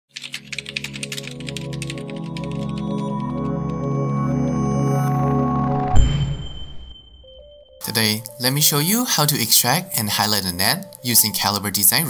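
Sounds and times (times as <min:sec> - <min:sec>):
keyboard typing: 0:00.1 - 0:03.9
synth music: 0:00.6 - 0:10.3.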